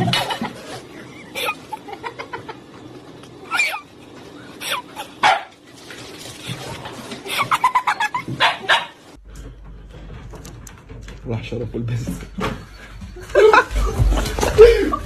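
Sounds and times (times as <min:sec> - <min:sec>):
dog barking and yipping: 0:05.2 - 0:05.6, 0:08.3 - 0:09.0.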